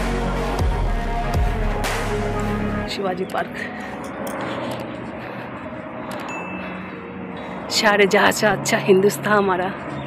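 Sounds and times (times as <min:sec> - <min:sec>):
distant engine noise: 0:02.3 - 0:10.0.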